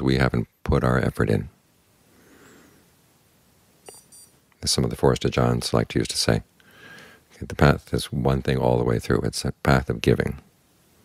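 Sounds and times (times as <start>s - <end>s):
faint soft hiss: 0.0s - 11.0s
short high-pitched electronic beep: 3.8s - 4.4s.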